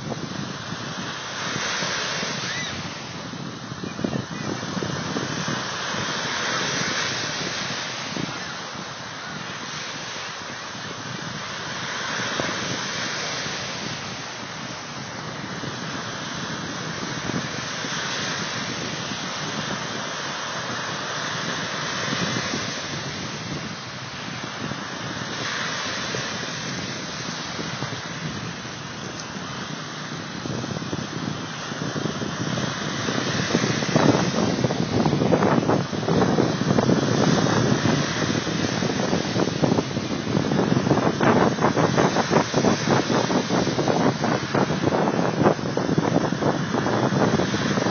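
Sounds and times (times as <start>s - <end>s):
waves washing onto beach: 0.0s - 47.9s
wind buffeting microphone: 0.0s - 47.9s.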